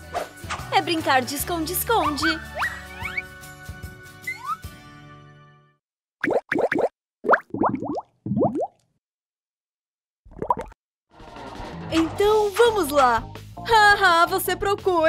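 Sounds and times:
background music: 0:00.0 - 0:05.8, 0:11.2 - 0:15.0.

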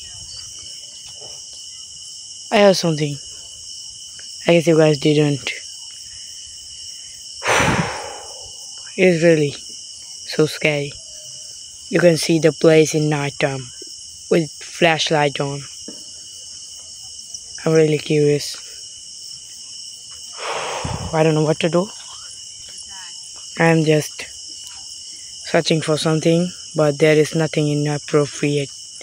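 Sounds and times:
crickets chirring: 0:00.0 - 0:29.0
low thump: 0:07.4 - 0:08.7
deep breath close to microphone: 0:07.4 - 0:08.8, 0:20.4 - 0:22.0
rush of noise: 0:07.4 - 0:08.8, 0:20.4 - 0:21.4.

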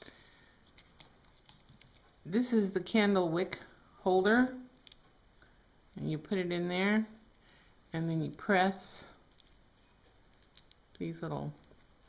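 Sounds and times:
hands rustling wax sheets: 0:09.2 - 0:12.0.

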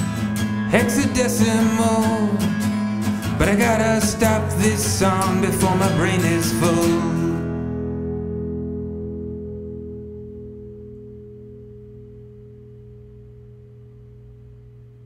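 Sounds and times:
guitar chord ringing out: 0:00.0 - 0:15.0.

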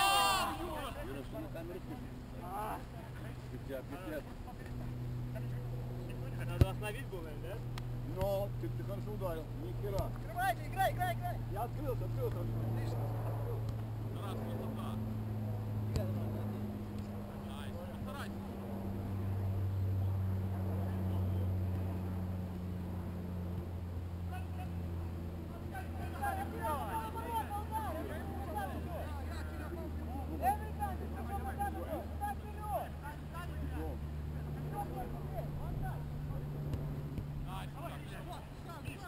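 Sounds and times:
distant players shouting: 0:00.0 - 0:01.9, 0:23.6 - 0:39.0
low motor drone: 0:00.5 - 0:32.3.

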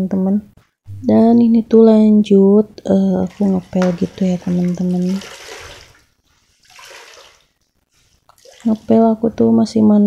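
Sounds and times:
water splashing from wrung mop: 0:03.2 - 0:07.6, 0:08.3 - 0:09.1.

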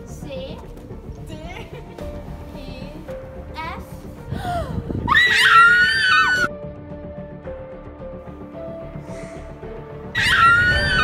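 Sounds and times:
dramatic background music: 0:00.0 - 0:11.0
high-pitched scream: 0:05.1 - 0:06.5, 0:10.2 - 0:11.0.

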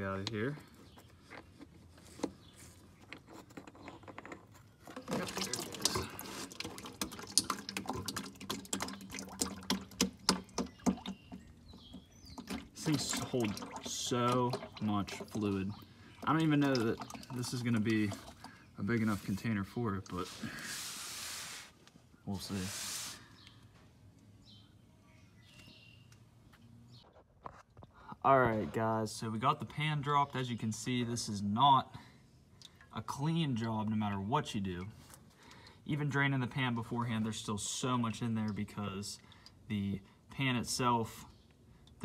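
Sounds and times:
fluid pouring into plastic container: 0:04.9 - 0:18.6.

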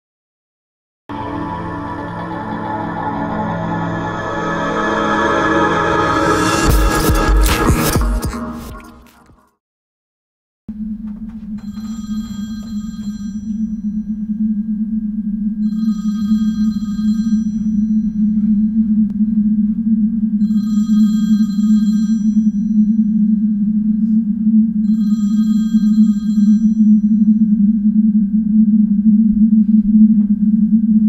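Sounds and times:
loud low drone: 0:01.1 - 0:09.0, 0:13.0 - 0:31.0
telephone ringing: 0:11.6 - 0:13.8, 0:15.6 - 0:17.9, 0:20.4 - 0:22.6, 0:24.9 - 0:26.8.

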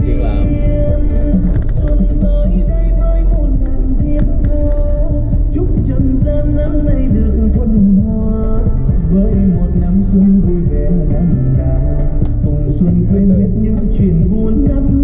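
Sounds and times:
loud music with heavy bass: 0:00.0 - 0:15.0.

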